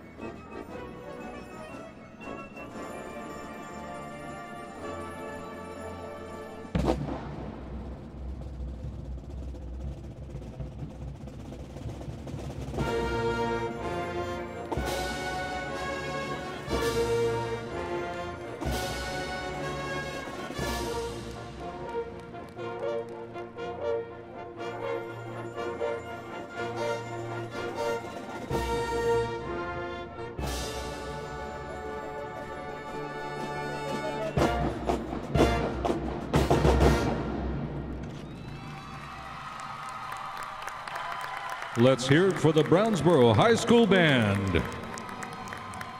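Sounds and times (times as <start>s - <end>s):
marching band playing: 0.0s - 38.1s, 40.6s - 45.9s.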